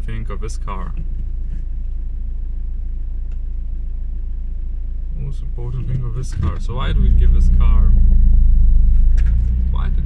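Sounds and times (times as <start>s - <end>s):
car cabin road noise rumble: 0.0s - 10.0s.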